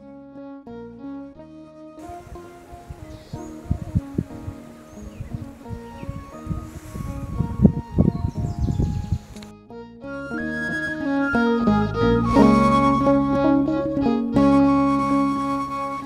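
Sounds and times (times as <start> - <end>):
soft background music: 0.0 - 16.0
wind buffeting microphone: 2.0 - 9.4.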